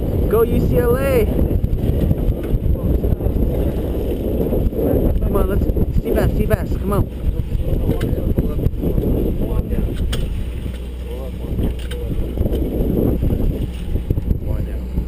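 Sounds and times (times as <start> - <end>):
boat engine rumbling: 0.0 - 15.0
sea wash: 0.0 - 15.0
wind: 0.0 - 15.0.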